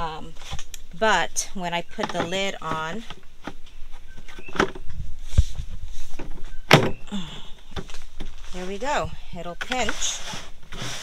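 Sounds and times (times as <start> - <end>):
plastic handling knocks and scrapes: 1.8 - 7.0, 7.7 - 11.0.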